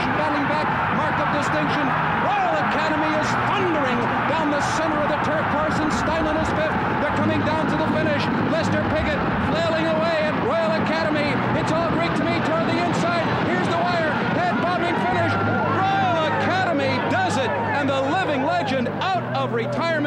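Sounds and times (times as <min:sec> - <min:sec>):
crowd noise: 0:00.0 - 0:20.0
race commentator calling excitedly: 0:00.0 - 0:20.0.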